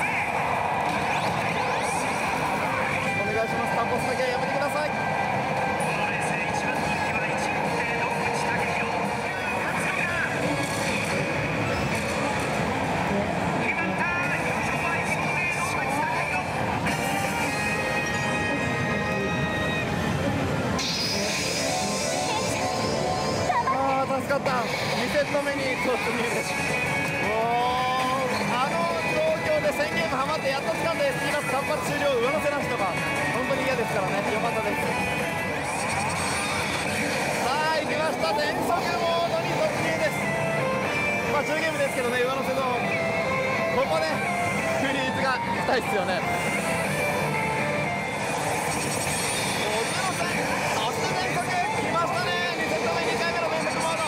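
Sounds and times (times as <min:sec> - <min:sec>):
gaming parlor din: 0:00.0 - 0:54.0
slot machines noise: 0:00.0 - 0:54.0
slot machine reels spinning: 0:16.4 - 0:27.3, 0:30.1 - 0:42.9, 0:43.5 - 0:54.0.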